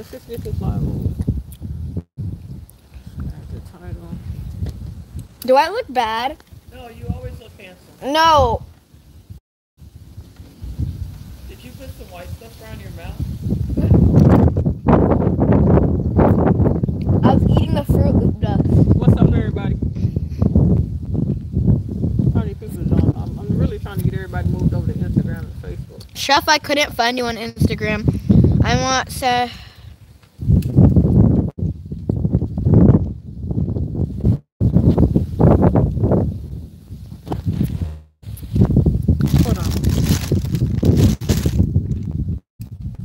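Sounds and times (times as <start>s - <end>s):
wind buffeting microphone: 0.0s - 43.0s
fingers rubbing phone microphone: 37.3s - 38.2s.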